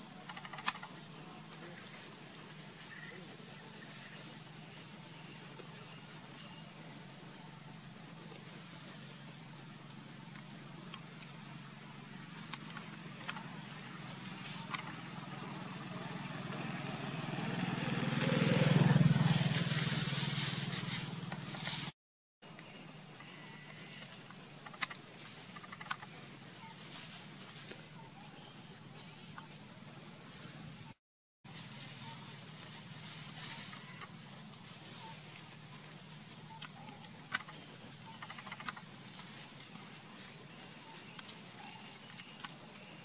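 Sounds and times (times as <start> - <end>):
sharp clicks: 0.2 - 1.0, 24.6 - 26.1, 36.6 - 38.9
vehicle passing: 13.0 - 21.8.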